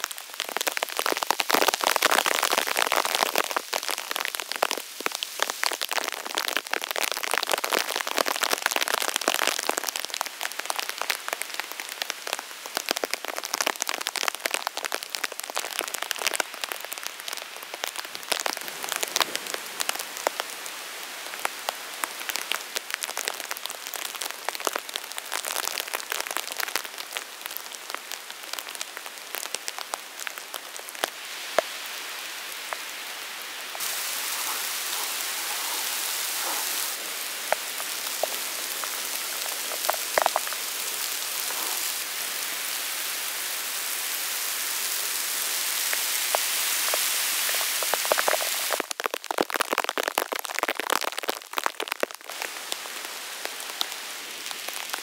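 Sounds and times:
raindrops ticking: 0.0 - 20.5, 21.2 - 31.7, 33.7 - 42.4, 46.0 - 52.5
steady rain in a forest: 0.0 - 55.0.

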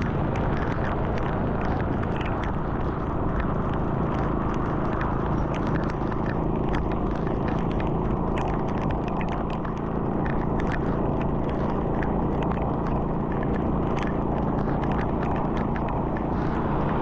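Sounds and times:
raindrops ticking on camera: 0.0 - 17.0
tyre noise on wet road: 0.0 - 17.0
wind rumble: 0.0 - 17.0.

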